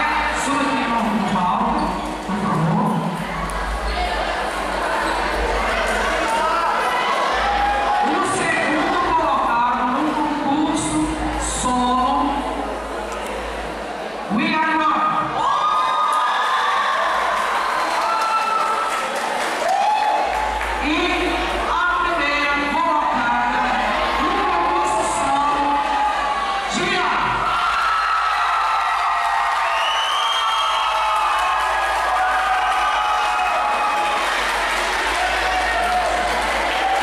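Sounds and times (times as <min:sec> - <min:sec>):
audience cheering and applauding: 0:15.4 - 0:20.8, 0:25.8 - 0:37.0.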